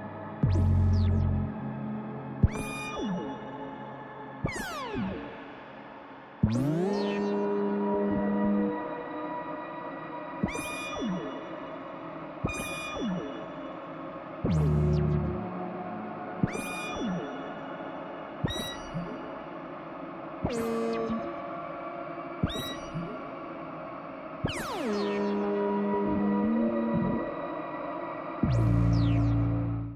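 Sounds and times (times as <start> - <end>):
synthesizer drone: 14.5 - 16.4, 24.5 - 27.7, 28.4 - 29.9
synthesizer swooping tones: 28.4 - 29.9.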